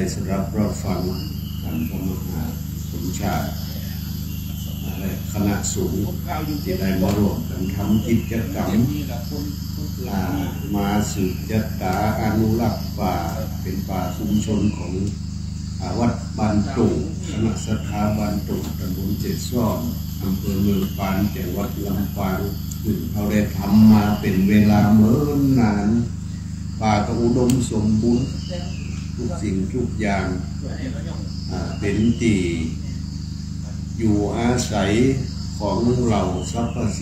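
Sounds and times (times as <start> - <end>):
man speaking into a microphone: 0.0 - 15.2, 15.8 - 26.2, 26.8 - 28.4, 29.2 - 33.0, 33.7 - 37.0
insects chirring: 0.0 - 37.0
low steady hum: 0.0 - 37.0.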